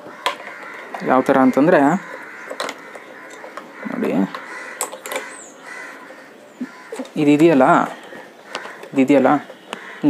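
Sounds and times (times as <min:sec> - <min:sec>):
plastic clicks: 0:00.1 - 0:01.2, 0:02.0 - 0:05.4, 0:06.7 - 0:07.2, 0:08.0 - 0:09.9.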